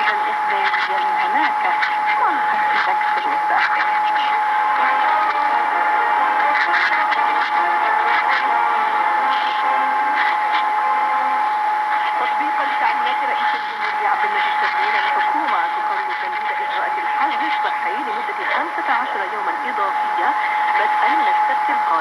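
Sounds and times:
heavy radio static: 0.0 - 22.0
weak radio voice: 0.0 - 22.0
steady interference whistle: 0.2 - 22.0.

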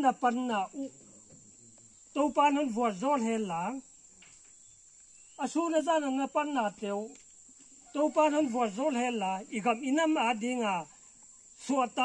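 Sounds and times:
cricket chorus: 0.0 - 12.0
man speaking: 8.0 - 10.9.

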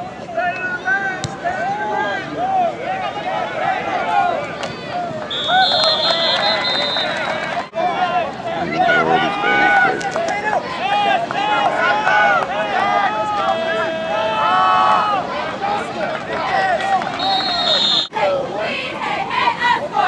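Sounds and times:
crowd shouting: 0.0 - 20.0
referee whistle blast: 5.3 - 7.4, 17.2 - 18.1.

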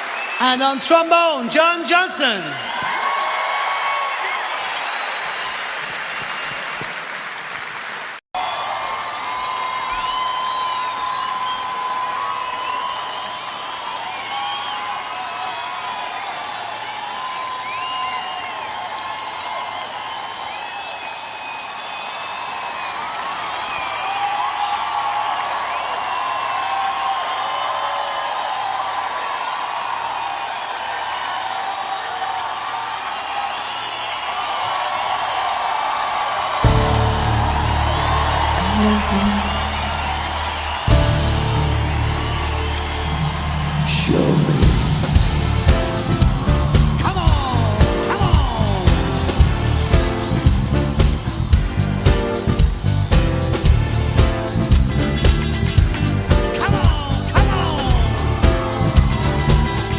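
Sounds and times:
whistles: 0.0 - 0.4, 4.4 - 5.6, 8.4 - 24.2, 33.2 - 34.7, 36.9 - 44.4
audience applauding and cheering: 0.0 - 59.9.

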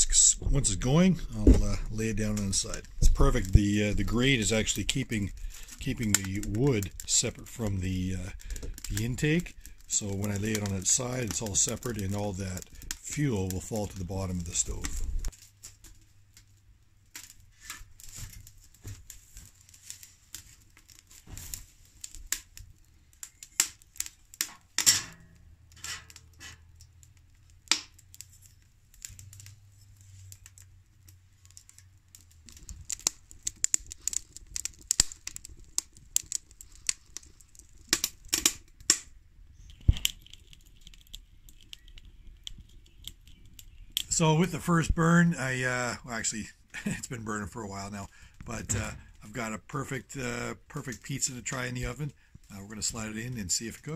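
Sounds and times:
wood fire crackling and popping: 0.0 - 53.9.

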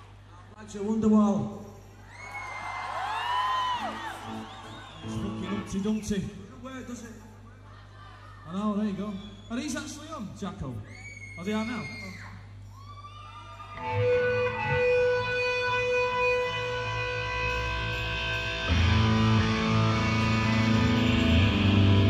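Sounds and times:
low stage hum: 1.6 - 22.0
electric guitar ringing notes: 13.8 - 22.0
heavy bass: 13.9 - 22.0.

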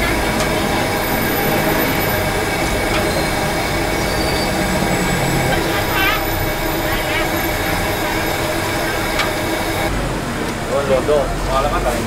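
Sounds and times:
street traffic: 0.0 - 12.0
voices: 0.0 - 12.0.

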